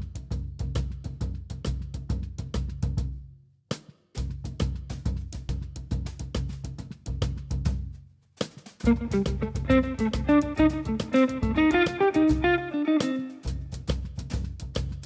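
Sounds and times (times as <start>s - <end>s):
drum kit played with sticks: 3.7s - 15.0s.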